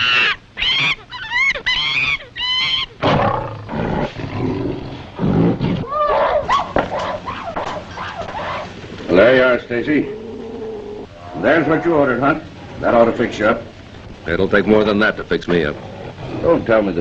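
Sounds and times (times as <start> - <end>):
high-pitched screeching animal calls: 0.0 - 3.5, 10.0 - 13.0
rough animal cries: 0.0 - 9.3, 9.9 - 13.8.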